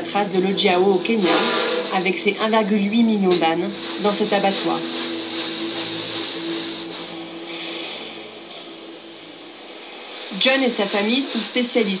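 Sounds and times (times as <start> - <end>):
steady mechanical hum: 0.0 - 12.0
hiss: 1.2 - 1.9, 3.7 - 8.0, 10.1 - 12.0.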